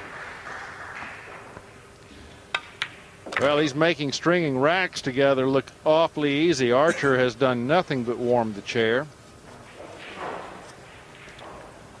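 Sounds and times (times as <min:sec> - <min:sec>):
hall background noise: 0:06.7 - 0:07.5.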